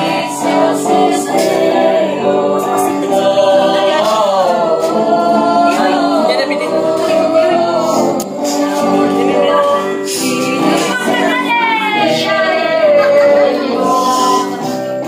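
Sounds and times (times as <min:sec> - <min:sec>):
group of people singing: 0:00.0 - 0:15.0.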